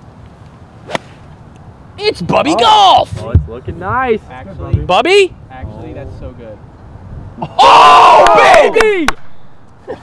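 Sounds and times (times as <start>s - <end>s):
faint outdoor background noise: 0.0s - 10.0s
golf club striking ball: 0.9s - 1.6s.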